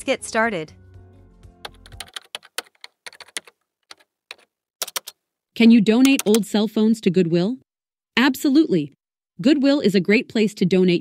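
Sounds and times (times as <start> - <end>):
keyboard keystroke clicks: 2.0 - 5.2.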